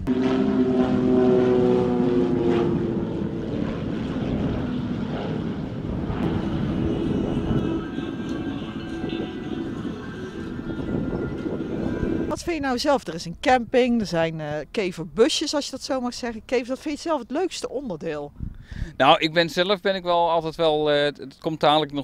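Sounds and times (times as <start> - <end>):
propeller aircraft engine drone: 0.0 - 12.4.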